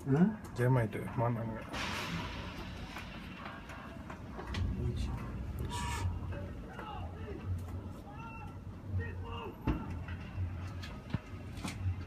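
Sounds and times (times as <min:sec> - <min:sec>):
low pulsing hum: 0:02.3 - 0:08.9.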